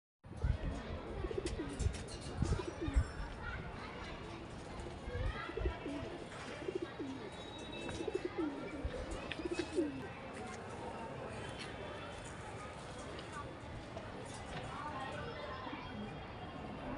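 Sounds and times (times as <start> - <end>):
pigeons cooing: 5.5 - 10.1.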